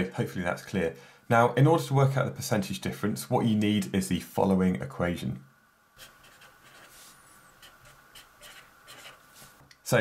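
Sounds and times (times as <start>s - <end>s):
felt-tip marker writing: 6.0s - 9.2s.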